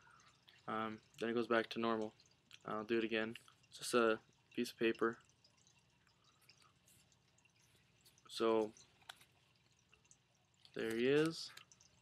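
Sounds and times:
paper card rustling: 8.8 - 9.7.

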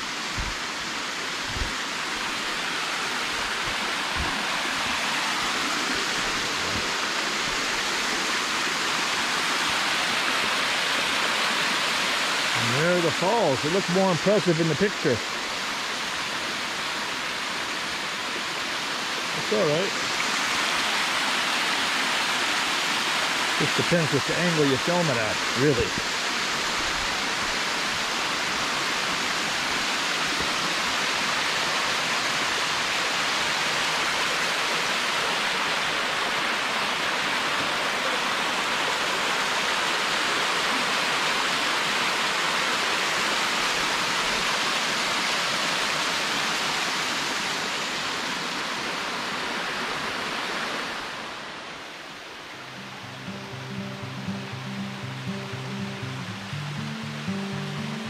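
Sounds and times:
small waterfall splashing: 0.0 - 57.9
background music with steady beat: 53.2 - 58.0.

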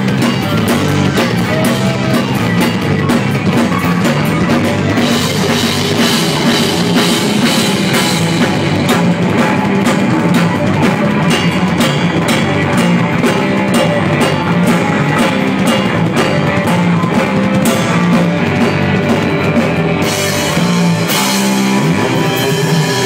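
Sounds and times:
drum kit beat: 0.0 - 23.0
electric guitar: 0.0 - 23.0.

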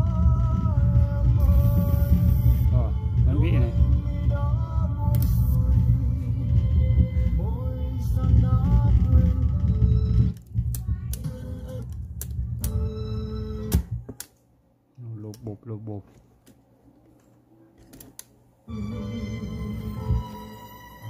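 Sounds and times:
song from cassette with heavy bass: 0.0 - 10.4, 18.7 - 21.0
tape deck clicks: 10.3 - 12.9.

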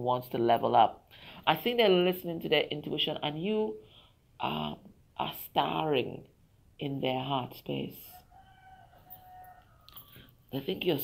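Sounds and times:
distant rooster crowing: 8.2 - 10.4.

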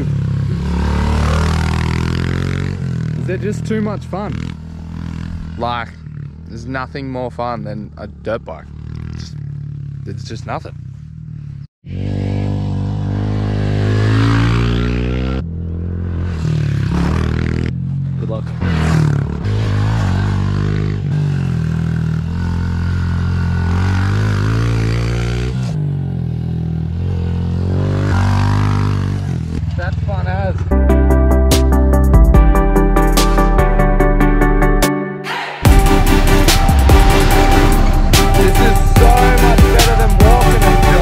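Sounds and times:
motorcycle engine revving: 0.0 - 30.8, 35.3 - 41.0.

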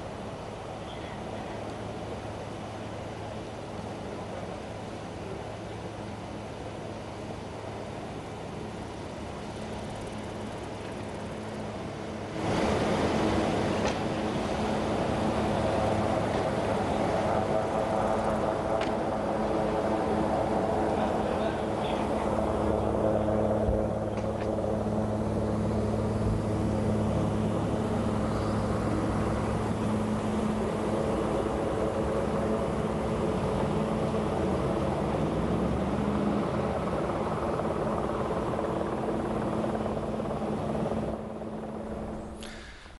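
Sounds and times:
vehicle engines humming: 9.5 - 42.9.

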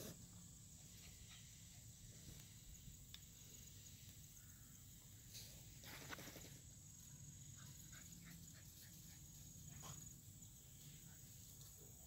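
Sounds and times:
high insect drone: 0.0 - 12.0.

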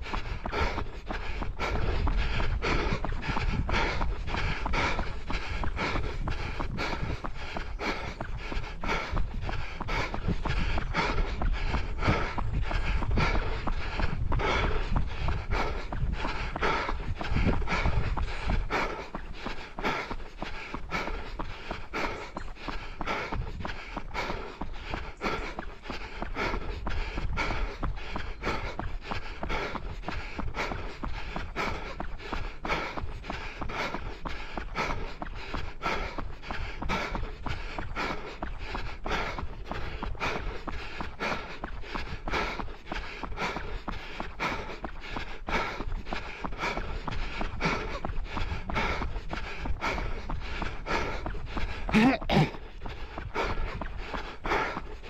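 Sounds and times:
heavy breathing: 0.0 - 55.0
running footsteps: 0.0 - 55.0.

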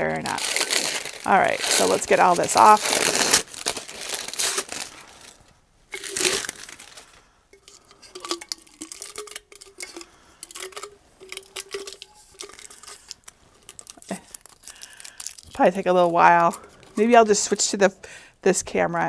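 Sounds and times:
paper crinkling: 0.0 - 17.6
tape tearing: 0.3 - 7.2, 11.4 - 17.0.

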